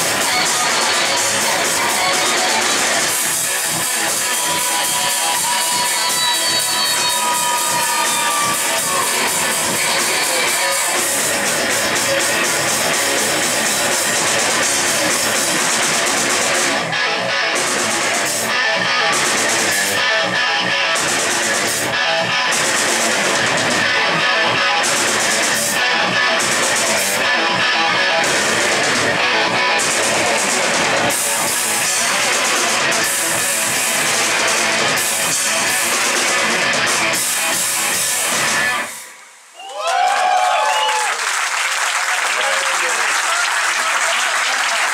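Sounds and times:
live rock band playing: 0.0 - 39.1.

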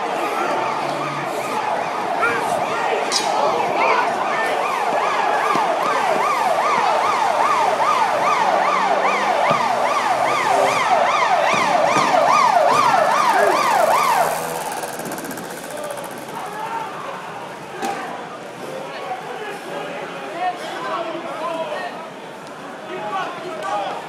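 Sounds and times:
emergency siren yelping: 0.0 - 17.2.

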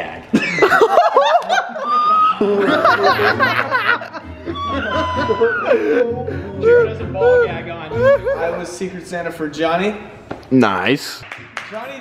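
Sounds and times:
young men laughing and yelling: 0.3 - 9.2.

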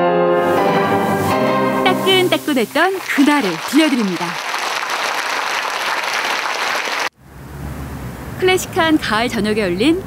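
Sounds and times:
audience applauding: 2.0 - 7.1.

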